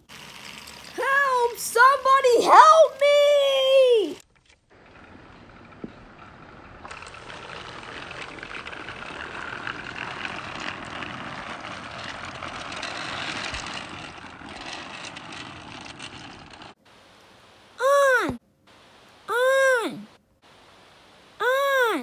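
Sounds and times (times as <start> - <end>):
toy train running on track: 0.0 - 4.2, 4.8 - 16.8.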